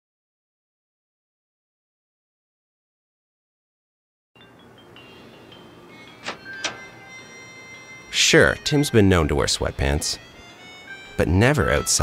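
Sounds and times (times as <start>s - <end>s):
faint steady background tone: 4.4s - 12.0s
door handle and latch clicking: 6.2s - 7.0s.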